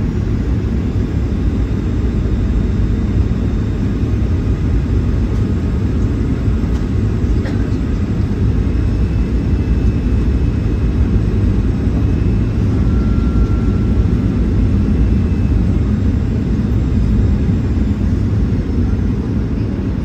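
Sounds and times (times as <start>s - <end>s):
jet engines and rushing air: 0.0s - 20.0s.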